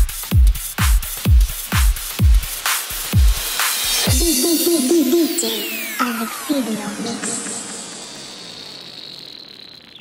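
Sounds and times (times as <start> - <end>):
electronic dance music: 0.0 - 9.4
high held synth tone: 4.1 - 10.0.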